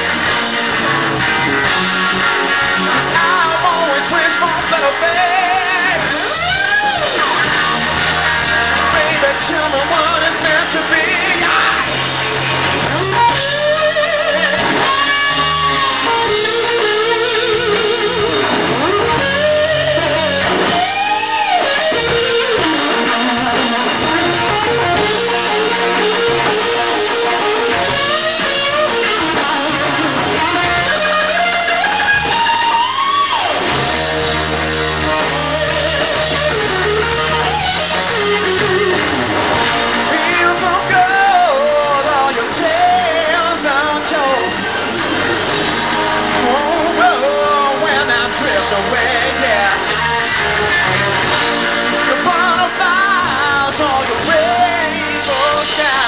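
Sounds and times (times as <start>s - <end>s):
bass: 0.0s - 56.0s
drums: 0.0s - 56.0s
electric guitar solo with bent notes: 0.0s - 56.0s
keyboards: 0.0s - 56.0s.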